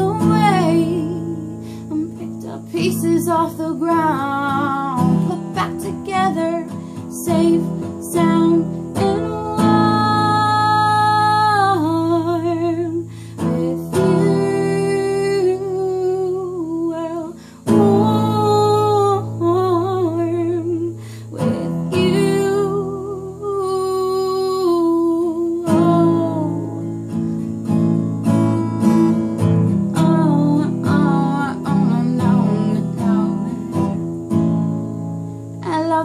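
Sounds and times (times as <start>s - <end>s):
woman singing: 0.0s - 27.3s, 28.2s - 34.4s, 35.6s - 36.0s
acoustic guitar strumming: 0.0s - 36.0s.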